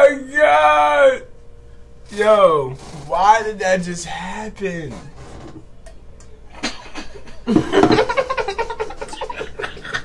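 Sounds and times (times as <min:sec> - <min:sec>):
man laughing high-pitched: 0:06.6 - 0:10.0.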